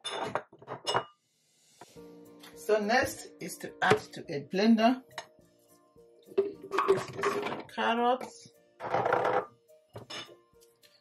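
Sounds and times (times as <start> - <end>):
soft background music: 0.1 - 11.0.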